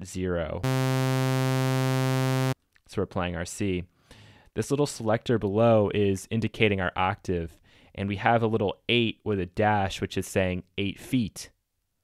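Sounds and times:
bright sawtooth synth tone: 0.6s - 2.6s.

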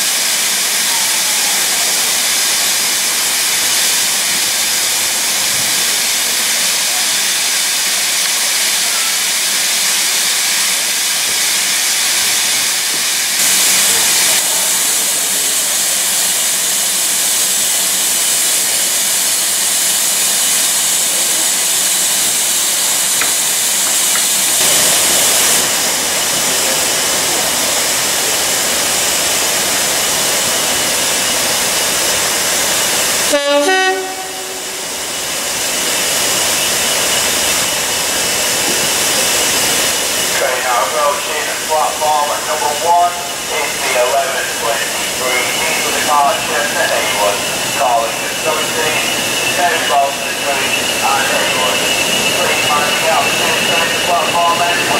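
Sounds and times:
steam locomotive hissing: 0.0s - 54.9s.

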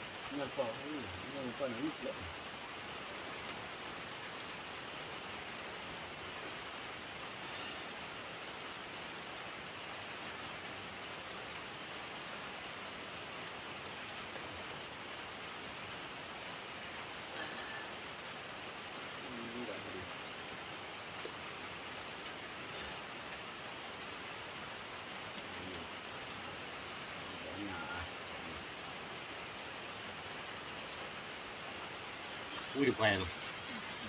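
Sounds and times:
steady rain falling: 0.0s - 34.0s
faint clicks: 13.2s - 14.4s, 21.2s - 22.3s, 30.8s - 31.1s.

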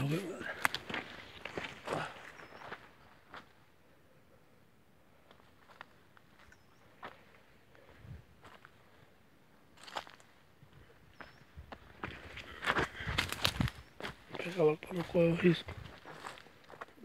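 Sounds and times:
footsteps crunching on dry leaves: 9.8s - 10.2s, 12.0s - 17.0s.

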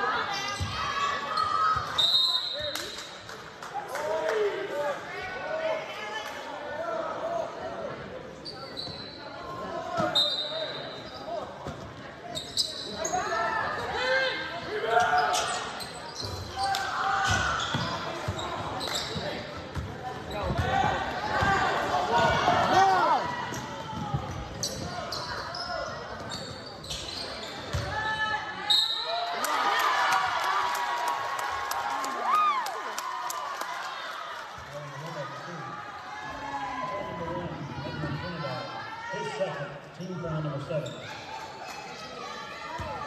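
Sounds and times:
voices calling out in gym: 0.0s - 43.0s.

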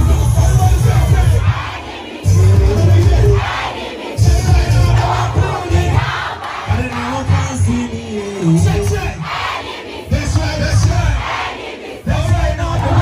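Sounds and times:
loud bass-heavy music: 0.0s - 1.6s, 2.2s - 3.6s, 4.2s - 6.1s
crowd shouting and singing: 0.0s - 13.0s.

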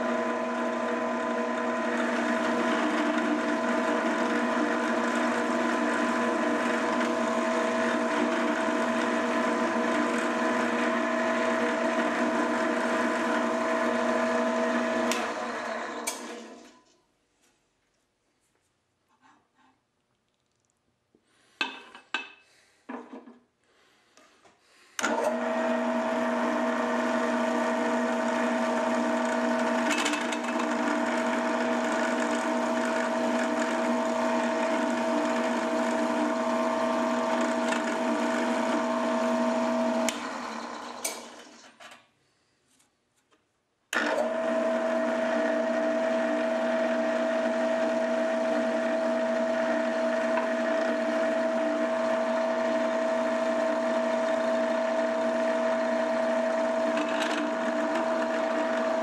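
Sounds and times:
milling machine spindle whine: 0.0s - 16.8s, 25.0s - 41.7s, 44.0s - 59.0s.

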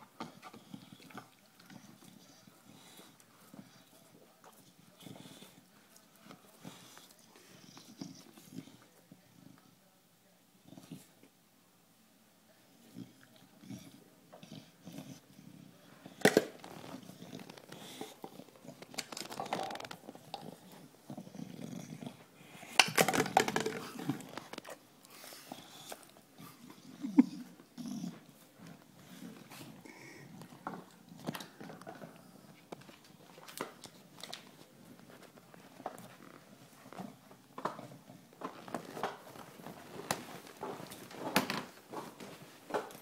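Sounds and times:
dog breathing and snuffling: 13.5s - 22.8s.

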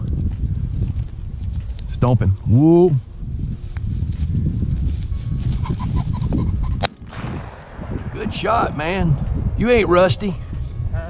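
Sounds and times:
steady low rumble: 0.0s - 11.0s
pheasant cackling calls: 5.5s - 6.9s
shotgun shot: 6.8s - 10.7s.

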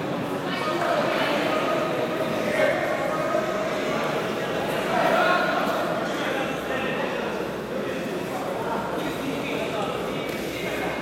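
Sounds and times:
chatter echoing in sports hall: 0.0s - 11.0s.

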